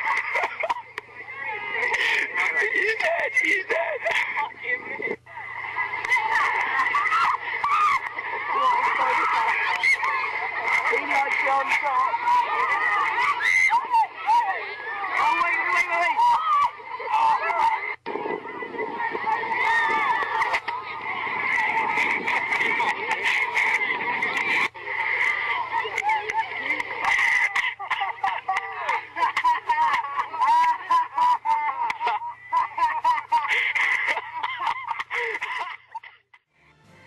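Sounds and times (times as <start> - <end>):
high voices shouting and squealing: 0.0 - 35.7.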